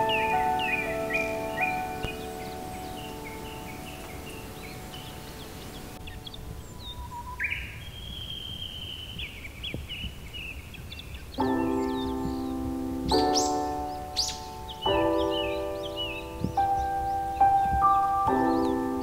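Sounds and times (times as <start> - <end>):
soft piano notes: 0.0 - 7.3, 11.4 - 19.0
bird chirps: 0.0 - 19.0
bird song phrase: 0.0 - 19.0.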